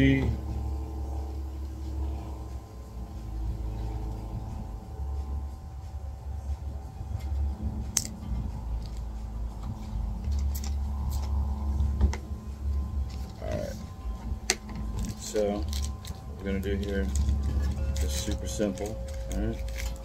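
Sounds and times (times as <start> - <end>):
faint hum: 0.0 - 20.0
low rumble: 0.0 - 20.0.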